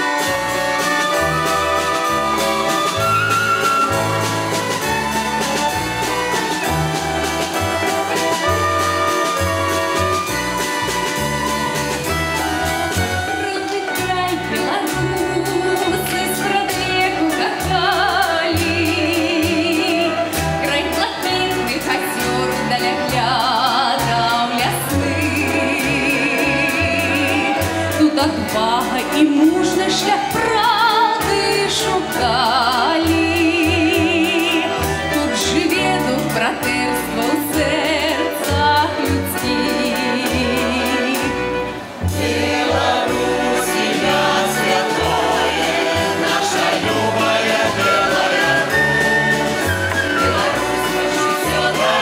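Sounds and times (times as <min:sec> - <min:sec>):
band accompaniment: 0:00.0 - 0:52.0
men and women singing in harmony: 0:14.3 - 0:20.6, 0:21.8 - 0:52.0
mixed choir singing in harmony: 0:22.2 - 0:28.0, 0:42.0 - 0:52.0.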